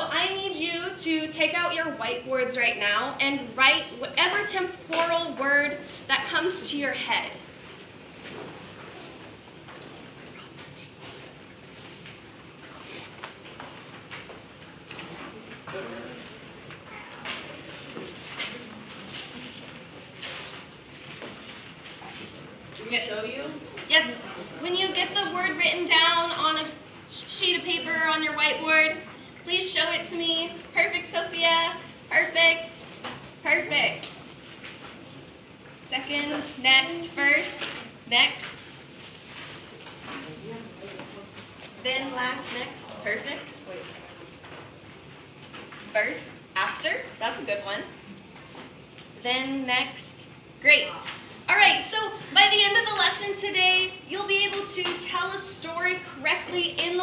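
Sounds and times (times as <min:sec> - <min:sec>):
woman speaking: 0:00.0 - 0:07.5, 0:22.8 - 0:34.3, 0:35.8 - 0:38.8, 0:41.8 - 0:43.7, 0:45.9 - 0:48.0, 0:49.2 - 0:57.0
faint clicks and rustles: 0:07.5 - 0:26.8, 0:37.3 - 0:46.5.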